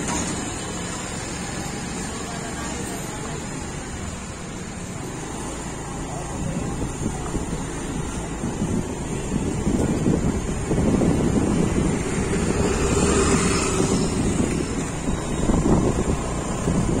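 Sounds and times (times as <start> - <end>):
outdoor street noise: 0.0 - 17.0
wind rumbling on microphone: 4.9 - 17.0.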